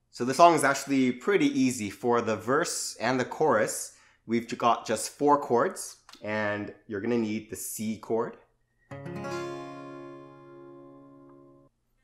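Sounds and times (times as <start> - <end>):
acoustic guitar chord strummed: 8.9 - 11.7.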